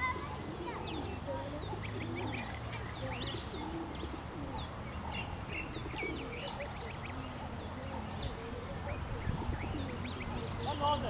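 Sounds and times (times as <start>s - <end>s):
goslings peeping: 0.0s - 11.0s.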